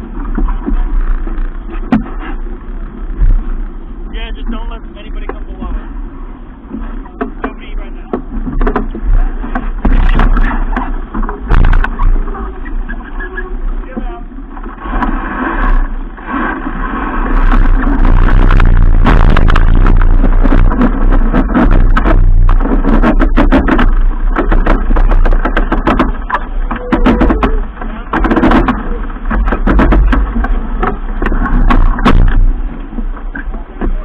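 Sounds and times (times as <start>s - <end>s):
water rushing along a hull: 0.0s - 34.0s
wind buffeting microphone: 0.0s - 34.0s.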